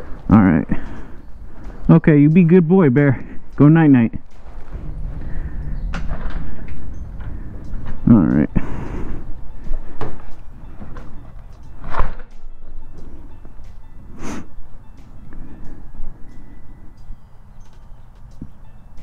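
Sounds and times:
interior door opening and closing: 4.4s - 12.8s.

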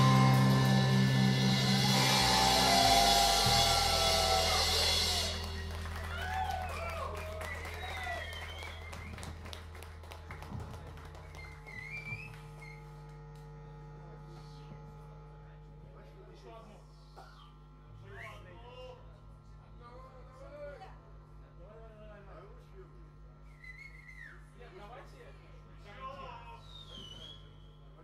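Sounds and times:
cymbal wash: 0.0s - 6.2s
distorted electric guitar chord: 0.0s - 6.2s, 13.1s - 16.3s
bass guitar: 0.0s - 15.8s
low amplifier hum: 0.0s - 28.0s.

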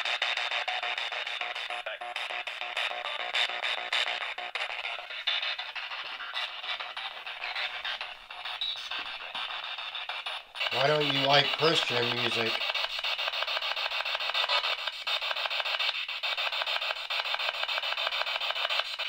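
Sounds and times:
spirit box sweeping radio stations: 0.0s - 19.0s.

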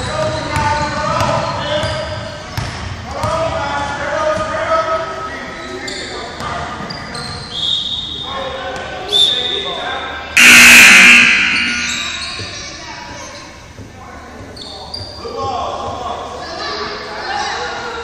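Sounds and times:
loud signal blast: 10.4s - 12.5s.

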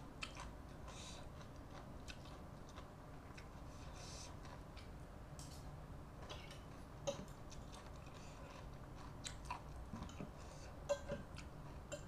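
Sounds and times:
chewing: 0.2s - 4.9s, 6.2s - 12.0s.

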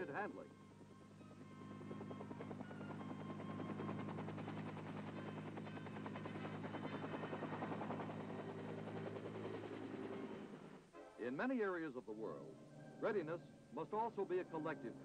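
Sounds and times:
music: 0.0s - 4.2s, 10.9s - 15.0s
helicopter rotor chop: 0.0s - 10.8s
helicopter engine drone: 0.0s - 10.9s, 12.1s - 15.0s.

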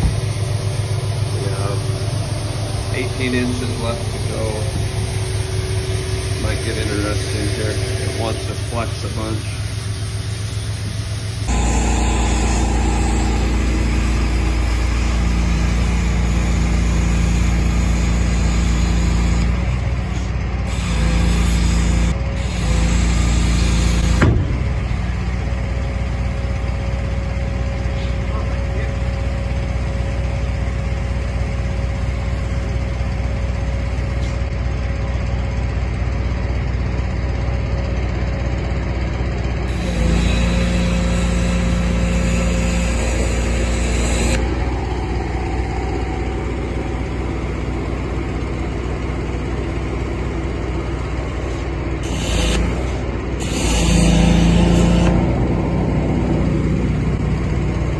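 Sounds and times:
engine droning: 0.0s - 57.9s.

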